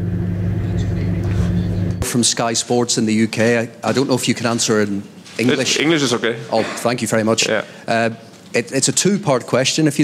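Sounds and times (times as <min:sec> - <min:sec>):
low hum and rumble: 0:00.0 - 0:02.1.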